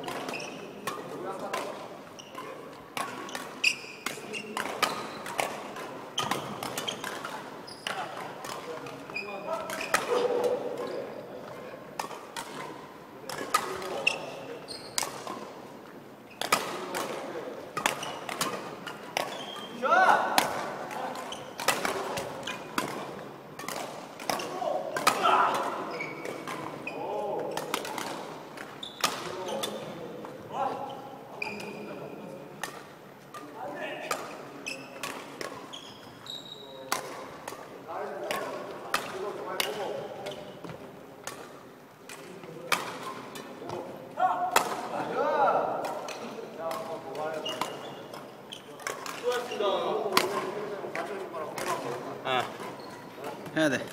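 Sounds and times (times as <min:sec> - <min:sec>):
shoes squeaking on wooden floor: 0:00.0 - 0:00.7, 0:02.1 - 0:02.6, 0:03.2 - 0:05.2, 0:06.2 - 0:08.1, 0:09.0 - 0:11.2, 0:13.9 - 0:15.0, 0:18.9 - 0:19.8, 0:25.8 - 0:27.6, 0:28.7 - 0:29.8, 0:30.6 - 0:31.9, 0:34.5 - 0:35.0, 0:35.6 - 0:36.9, 0:47.3 - 0:50.7, 0:51.7 - 0:53.9
rackets striking shuttlecocks: 0:00.0 - 0:36.2, 0:36.8 - 0:53.9.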